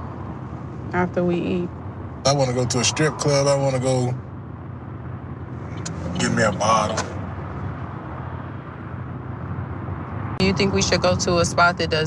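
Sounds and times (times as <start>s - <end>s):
car engine drone: 0.0s - 12.0s
road noise: 0.0s - 12.0s.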